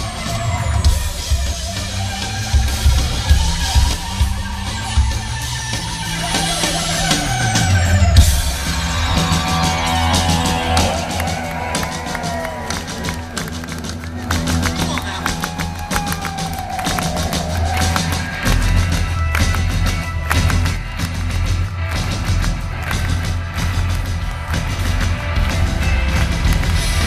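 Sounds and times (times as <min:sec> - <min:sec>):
live rock band playing: 0:00.0 - 0:27.0
hand claps in time: 0:11.3 - 0:27.0.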